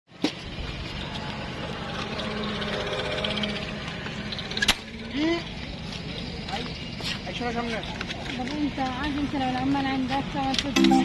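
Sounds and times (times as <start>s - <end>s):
low background hum: 0.4s - 11.0s.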